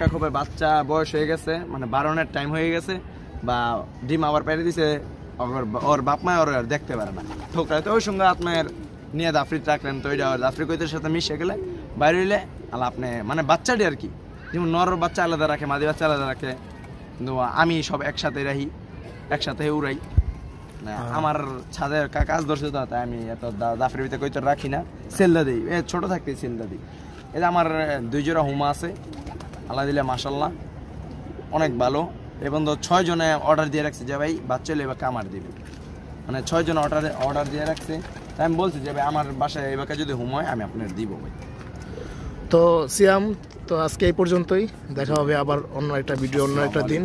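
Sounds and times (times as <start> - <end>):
pigeons cooing: 6.7 - 10.0, 10.6 - 13.3, 28.9 - 31.8, 41.3 - 42.5
man talking: 36.3 - 41.4, 42.5 - 47.0.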